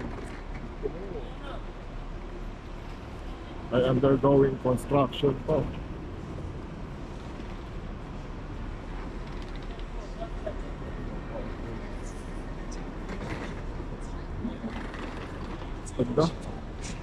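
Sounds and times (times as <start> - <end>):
faint voices of passers-by: 8.1 - 17.0.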